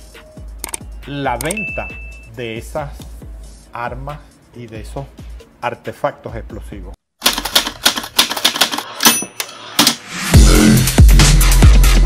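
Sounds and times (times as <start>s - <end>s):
typewriter keys clacking: 7.2s - 9.3s.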